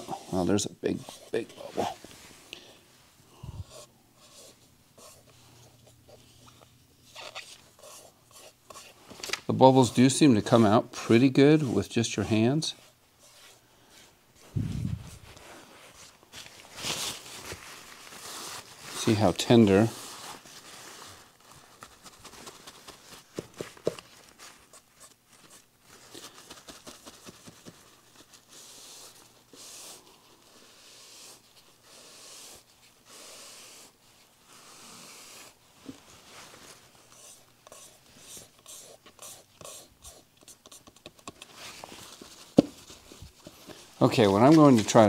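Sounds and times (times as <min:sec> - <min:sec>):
paper towel rubbing on wood: 0:17.5 - 0:23.1.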